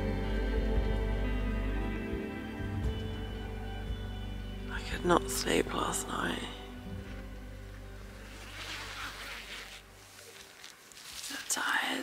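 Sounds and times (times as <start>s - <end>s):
nylon fabric rustling: 7.0s - 12.0s
tent zip pulled open: 8.0s - 11.7s.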